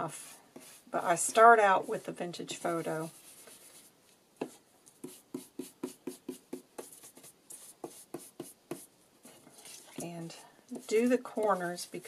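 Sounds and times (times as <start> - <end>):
ink tool dabbing on paper: 0.1 - 3.8, 4.4 - 8.9.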